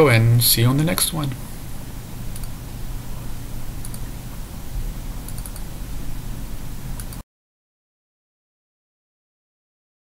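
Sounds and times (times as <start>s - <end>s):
microphone hum and hiss: 0.0s - 7.2s
computer mouse clicks: 2.3s - 2.6s, 3.8s - 4.1s, 5.2s - 5.7s, 7.0s - 7.2s.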